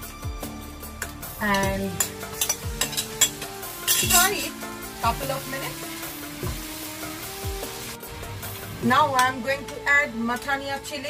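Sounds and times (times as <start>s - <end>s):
meat sizzling in a pan: 1.1s - 9.6s.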